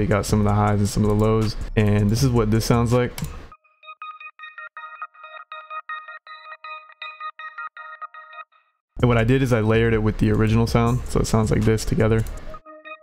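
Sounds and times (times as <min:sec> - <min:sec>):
thin synth melody: 0:03.5 - 0:08.6, 0:12.5 - 0:13.0.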